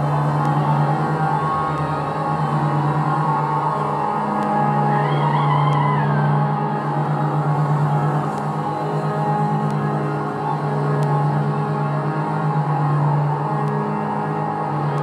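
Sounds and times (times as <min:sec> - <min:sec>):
low pulsing drone: 0:00.0 - 0:15.0
sustained tones: 0:00.0 - 0:15.0.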